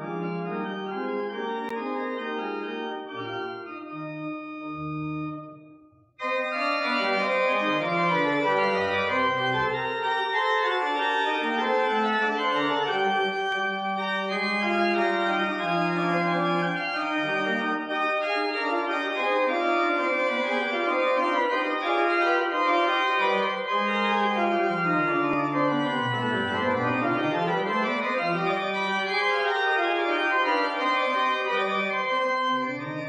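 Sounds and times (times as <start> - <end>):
pipe organ playing chords: 0.0 - 33.0.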